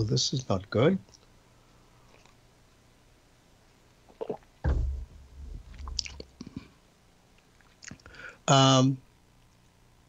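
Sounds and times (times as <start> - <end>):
wet mouth clicks: 4.1 - 4.5, 5.8 - 6.6, 7.6 - 8.1.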